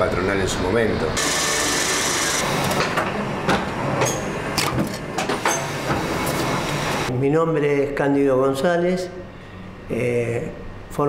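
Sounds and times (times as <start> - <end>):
printing machinery clattering: 1.2 - 7.1.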